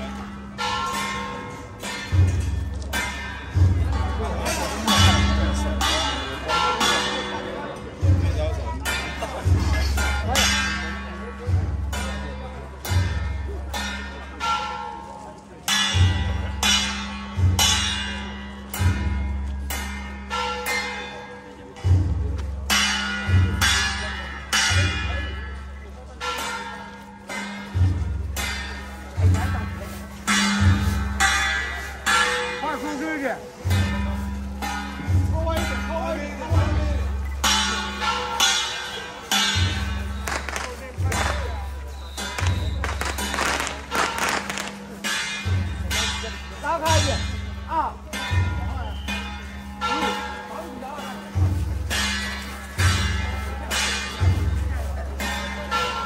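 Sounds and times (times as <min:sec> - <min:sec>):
gongs and cymbals struck: 0:00.0 - 0:56.0
deep drum strikes: 0:33.6 - 0:49.8.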